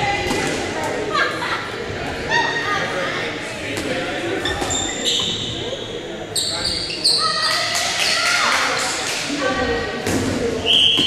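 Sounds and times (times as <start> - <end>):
voices echoing in hall: 0.0 - 11.0
sneakers squeaking on hardwood: 4.4 - 5.6, 6.4 - 7.5.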